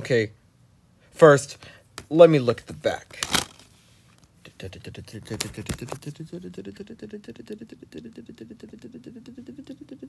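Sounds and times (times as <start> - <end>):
person giggling: 5.8 - 10.0.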